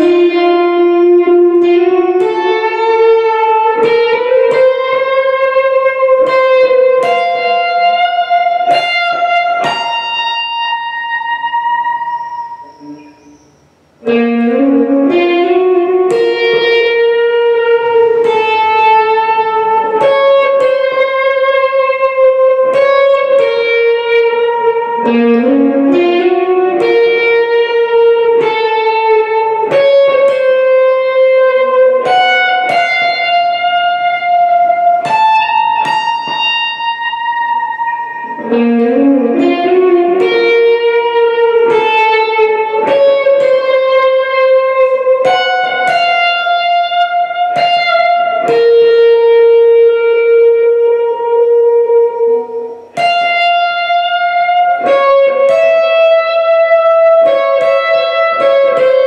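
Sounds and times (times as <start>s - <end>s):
electric guitar sustained notes: 0.0s - 59.0s.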